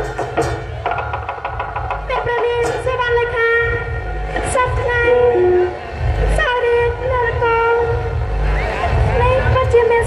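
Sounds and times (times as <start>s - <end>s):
woman singing over loudspeaker: 2.0s - 10.0s.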